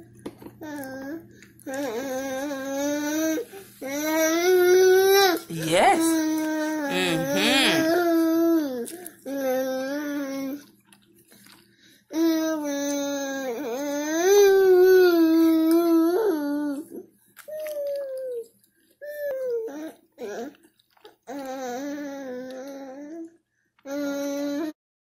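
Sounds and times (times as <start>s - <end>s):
toddler sing-song voice: 6.0s - 8.7s.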